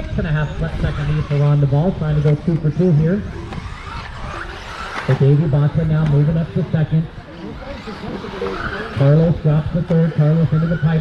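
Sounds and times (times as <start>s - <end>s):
faint voices: 0.0s - 11.0s
rc car motors whining: 0.0s - 11.0s.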